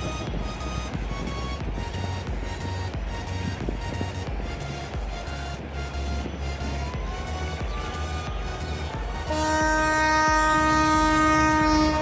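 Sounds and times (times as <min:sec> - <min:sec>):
music with pulsing beat: 0:00.0 - 0:12.0
horn-like chord: 0:09.2 - 0:12.0.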